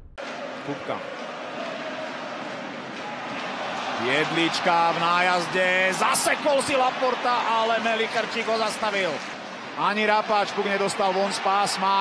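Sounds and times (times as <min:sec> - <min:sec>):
arena crowd noise: 0:00.2 - 0:12.0.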